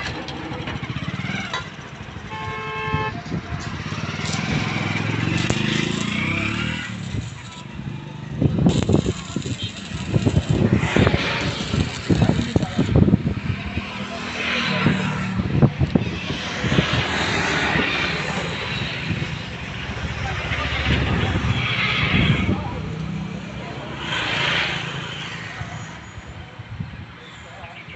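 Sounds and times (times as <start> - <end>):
arc welding crackling hiss: 3.8 - 14.3.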